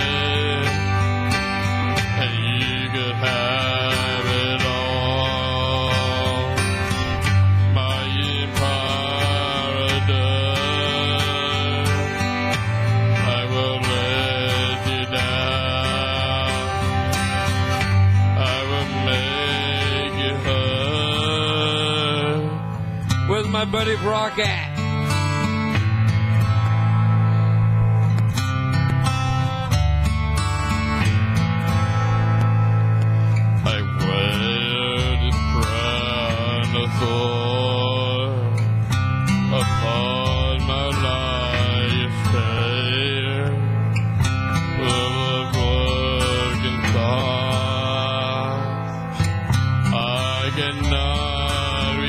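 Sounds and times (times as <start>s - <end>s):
man singing into a microphone: 0.0s - 24.8s, 33.6s - 52.0s
karaoke backing track with guitar: 0.0s - 52.0s.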